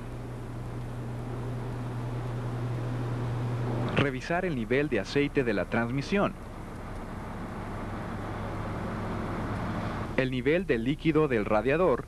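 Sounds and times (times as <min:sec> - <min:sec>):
low hum: 0:00.0 - 0:10.9.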